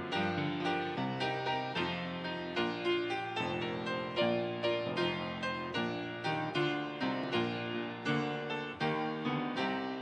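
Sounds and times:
piano piece: 0.0s - 10.0s.

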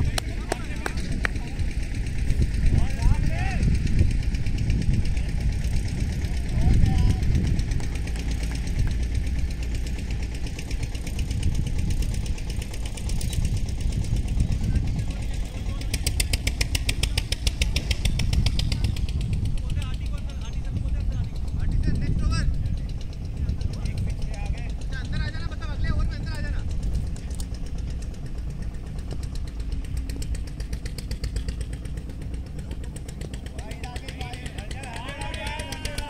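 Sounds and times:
steady low rumble: 0.0s - 36.0s
distant players shouting: 33.5s - 36.0s.

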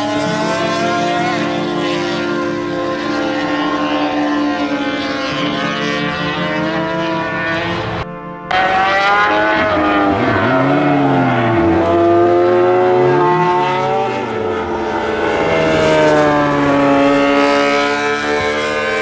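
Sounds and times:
motorcycle engine at high revs: 0.0s - 19.0s.

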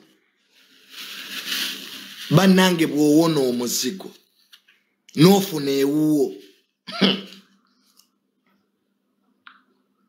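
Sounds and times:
man's voice: 2.2s - 4.2s, 5.1s - 6.5s.

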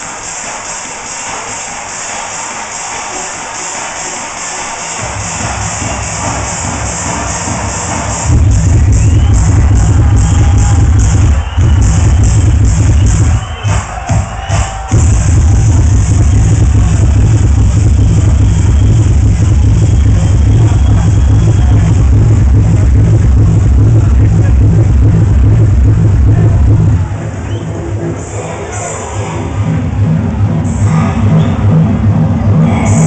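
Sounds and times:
loud techno music: 0.0s - 33.0s
heavy kick drum beat: 4.8s - 27.2s.

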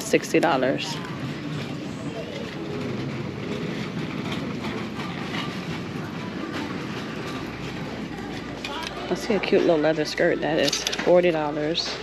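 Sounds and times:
store background noise: 0.0s - 12.0s
hangers clicking on metal rack: 10.5s - 11.4s.

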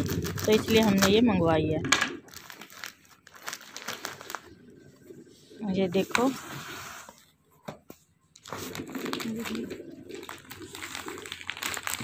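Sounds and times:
foil packet crinkling and tearing: 0.0s - 1.2s, 2.2s - 4.7s, 8.3s - 12.0s.

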